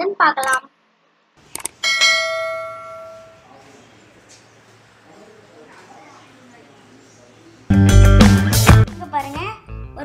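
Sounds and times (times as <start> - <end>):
bright bell ding: 1.8 - 3.5.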